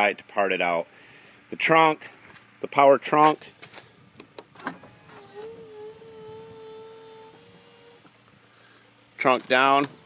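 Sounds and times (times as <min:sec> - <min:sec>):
trunk lid motor hum: 0:04.1 - 0:08.4.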